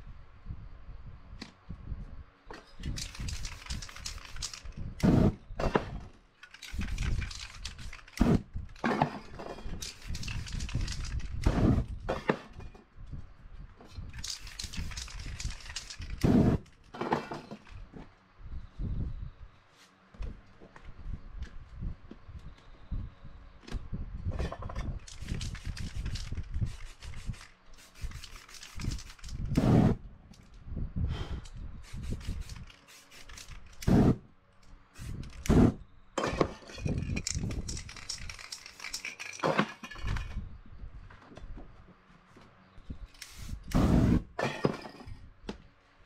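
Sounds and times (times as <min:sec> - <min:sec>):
spray can hissing: 0:03.0 - 0:05.2, 0:14.2 - 0:16.4, 0:25.1 - 0:29.8, 0:31.8 - 0:34.0, 0:35.0 - 0:35.7, 0:43.2 - 0:44.2
whoosh of flame: 0:29.5 - 0:30.0.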